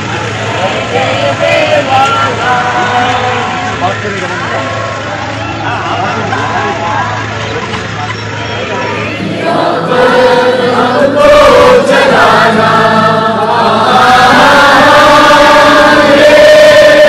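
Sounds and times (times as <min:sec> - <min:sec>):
crowd singing in unison: 0:00.0 - 0:08.0, 0:08.7 - 0:17.0.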